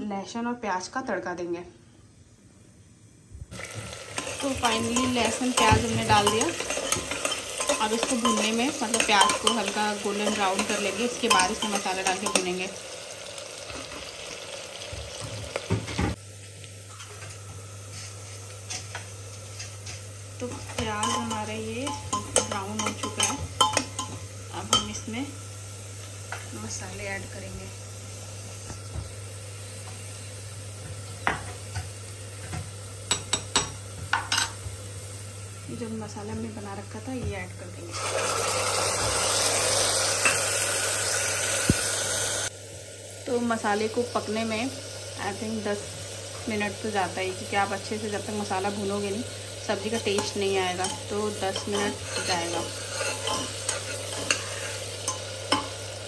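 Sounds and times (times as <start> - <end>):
onions sizzling in oil: 3.0 - 56.0.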